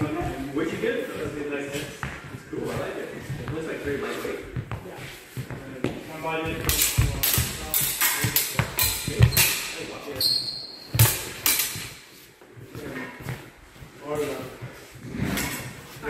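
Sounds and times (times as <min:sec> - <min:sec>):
feet stamping: 0:00.0 - 0:09.6
steel blades clacking: 0:06.7 - 0:09.8, 0:11.0 - 0:11.9.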